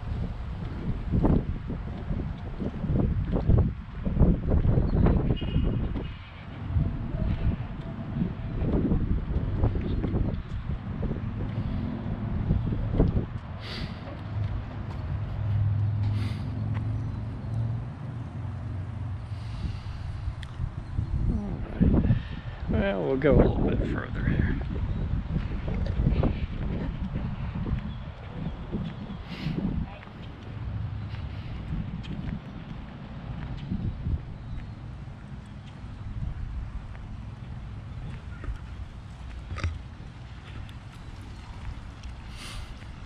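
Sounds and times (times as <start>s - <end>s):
low engine hum: 0.0s - 43.0s
wind gusting on microphone: 0.0s - 43.0s.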